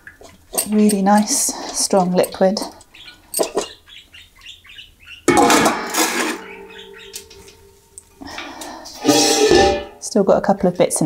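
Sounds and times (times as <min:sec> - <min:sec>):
metal pot clattering: 0:03.3 - 0:03.8, 0:05.2 - 0:10.1
pot ringing with steady tone: 0:05.3 - 0:10.0
pot scraping clatter: 0:05.3 - 0:10.0.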